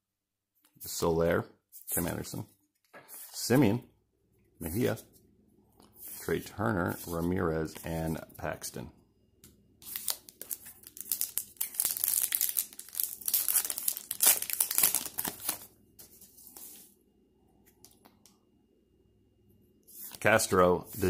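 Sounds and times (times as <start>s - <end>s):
wrapper tearing and crinkling: 9.8s - 15.7s.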